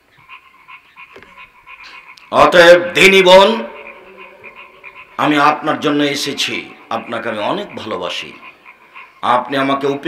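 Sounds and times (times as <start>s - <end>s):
faint background hum: 0.0s - 10.0s
man speaking into a microphone: 2.3s - 4.1s, 5.2s - 8.5s, 9.2s - 10.0s.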